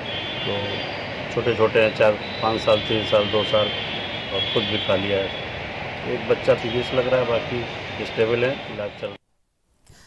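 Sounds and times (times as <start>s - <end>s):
high-pitched whine: 0.0s - 9.2s
man speaking: 0.4s - 5.4s, 6.0s - 9.2s.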